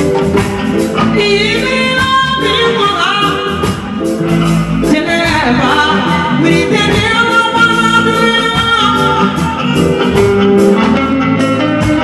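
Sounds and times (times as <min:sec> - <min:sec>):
drums beating: 0:00.0 - 0:12.0
live band music: 0:00.0 - 0:12.0
woman singing: 0:00.9 - 0:03.8, 0:04.8 - 0:09.9.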